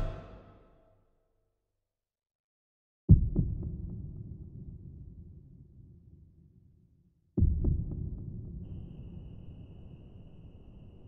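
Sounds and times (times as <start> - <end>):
deep boom with echoes: 0.0 - 0.6.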